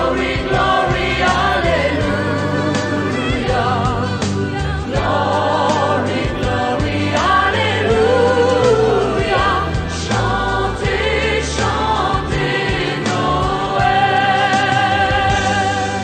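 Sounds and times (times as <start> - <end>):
sustained low bass notes: 0.0 - 15.6
choir singing with vibrato: 0.0 - 16.0.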